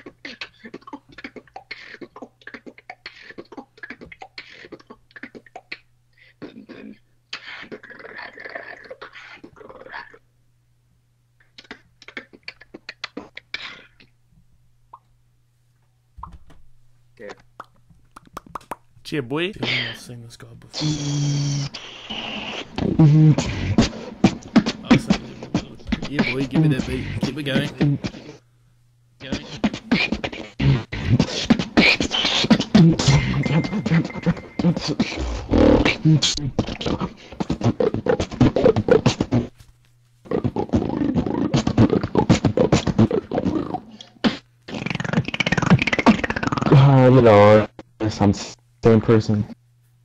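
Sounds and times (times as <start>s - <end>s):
beatboxing mouth percussion: 0.0s - 10.2s, 11.4s - 14.1s, 17.2s - 18.9s, 20.7s - 28.4s, 29.2s - 39.5s, 40.3s - 47.9s
low electrical hum: 0.0s - 50.0s
mouth clicks and pops: 0.2s - 6.7s, 14.9s - 15.1s, 16.2s - 16.6s, 17.3s - 18.9s, 40.3s - 46.8s.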